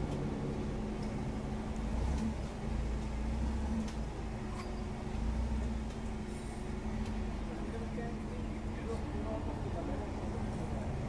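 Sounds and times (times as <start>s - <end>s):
forklift engine droning: 0.0s - 11.0s.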